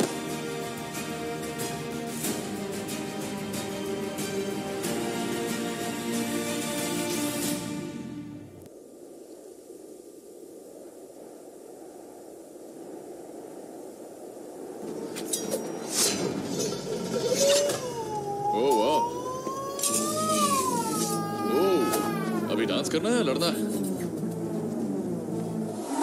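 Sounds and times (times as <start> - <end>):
low ambience: 0.0 - 26.0
wavering voice-like sounds: 17.1 - 24.2.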